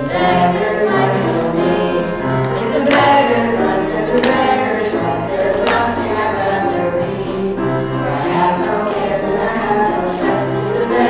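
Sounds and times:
children singing together: 0:00.0 - 0:11.0.

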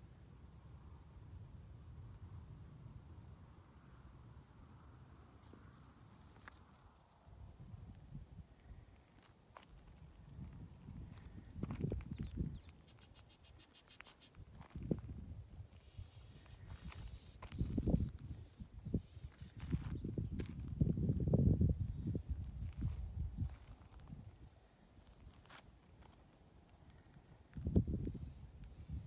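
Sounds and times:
wind buffeting microphone: 0:09.8 - 0:12.8, 0:14.4 - 0:24.6, 0:27.5 - 0:29.0.

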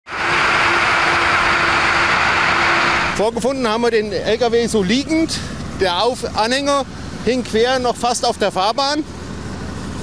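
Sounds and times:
motorway traffic: 0:00.0 - 0:10.0
engine running: 0:00.1 - 0:10.0.

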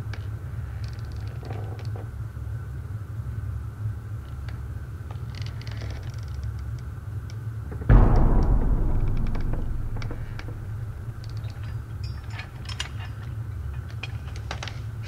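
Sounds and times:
low rumbling ambient drone: 0:07.9 - 0:12.0.

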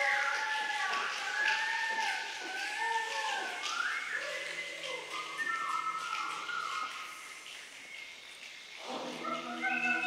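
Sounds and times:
choir whistling: 0:09.2 - 0:10.0.

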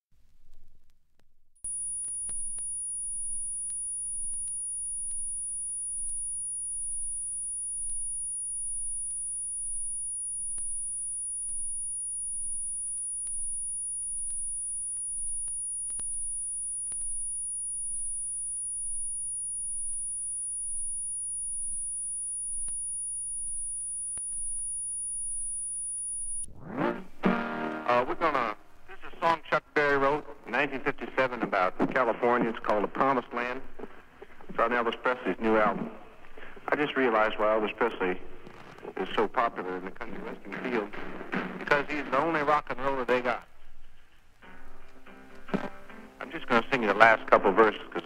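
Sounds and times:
faint clicks: 0:01.6 - 0:26.5
high-pitched electronic whine: 0:01.6 - 0:27.6.

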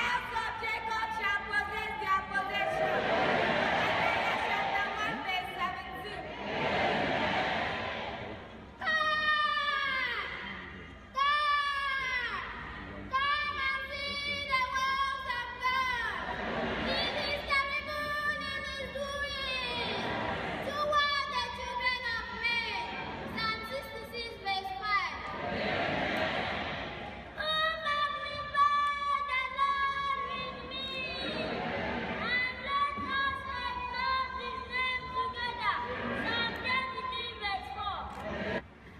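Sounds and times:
crowd noise in large hall: 0:00.0 - 0:38.9.

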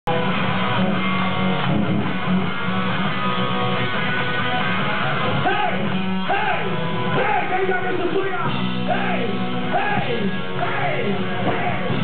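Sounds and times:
electric guitar: 0:00.0 - 0:12.0
rock band playing live: 0:00.1 - 0:12.0.

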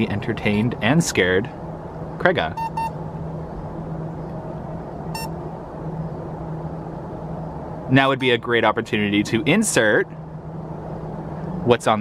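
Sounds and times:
steady background hum: 0:00.0 - 0:12.0
short electronic beep: 0:02.6 - 0:03.0.

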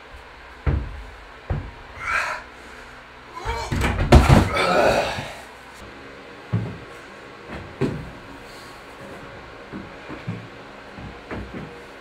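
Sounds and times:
heavy thud of landing: 0:00.6 - 0:02.1, 0:03.5 - 0:05.3
man grunting with effort: 0:01.9 - 0:02.6, 0:03.3 - 0:03.8, 0:04.4 - 0:05.5
loud breathing: 0:02.0 - 0:03.6.

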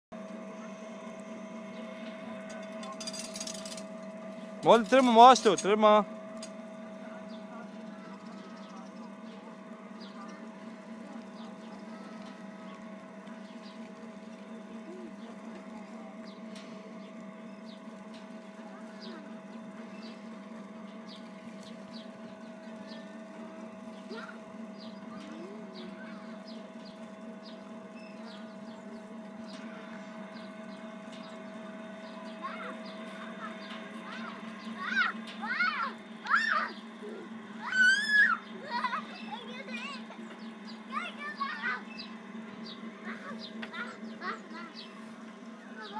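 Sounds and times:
carousel humming: 0:00.1 - 0:45.9
chains clicking: 0:02.5 - 0:04.0
child squealing: 0:34.9 - 0:36.7, 0:37.6 - 0:39.0.

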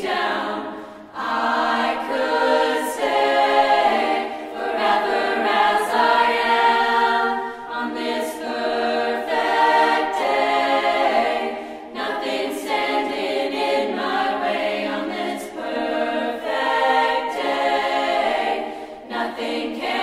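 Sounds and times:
choir singing in harmony: 0:00.0 - 0:20.0.

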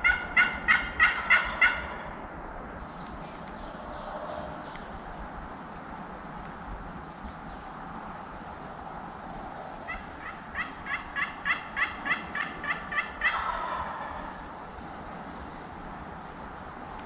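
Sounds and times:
turkey yelps: 0:00.0 - 0:02.1, 0:09.9 - 0:14.5
turkey gobble: 0:00.0 - 0:02.2, 0:09.9 - 0:14.5.

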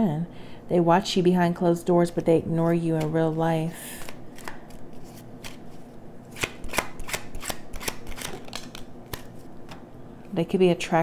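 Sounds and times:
cards being shuffled: 0:02.6 - 0:09.8.

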